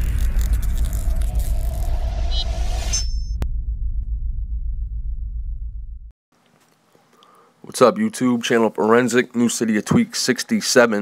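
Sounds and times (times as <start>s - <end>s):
deep steady rumble: 0.0s - 6.1s
whoosh and boom hit: 0.0s - 6.1s.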